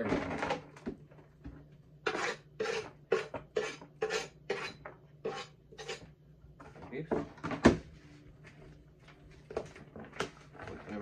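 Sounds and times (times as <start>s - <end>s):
chopped vegetables scraped off board: 2.1s - 6.0s.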